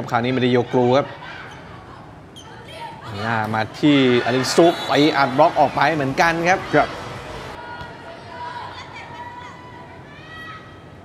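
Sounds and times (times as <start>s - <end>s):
arena crowd noise: 0.0s - 11.0s
male commentator speaking: 3.1s - 6.9s.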